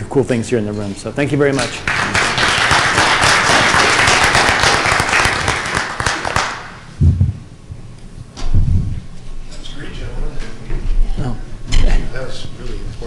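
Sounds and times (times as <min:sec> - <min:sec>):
audience applauding: 0:01.7 - 0:06.9
low thump: 0:07.0 - 0:07.5.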